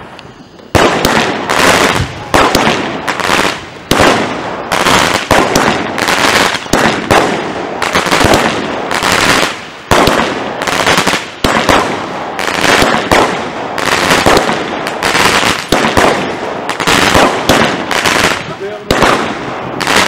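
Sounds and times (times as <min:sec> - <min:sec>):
firework bangs: 0:00.0 - 0:20.0
firework stars crackling: 0:00.0 - 0:20.0.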